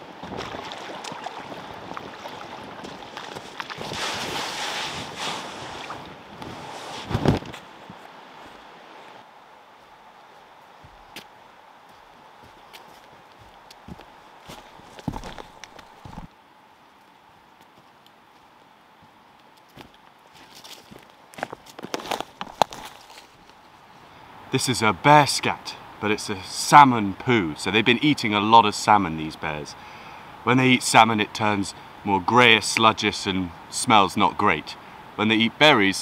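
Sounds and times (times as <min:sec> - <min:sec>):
water swishing and splashing: 0:00.0 - 0:09.2
footsteps on dirt trail: 0:00.2 - 0:09.2, 0:09.8 - 0:16.3, 0:17.0 - 0:23.6
footsteps on sand: 0:01.9 - 0:09.2, 0:09.8 - 0:16.3, 0:17.6 - 0:23.5.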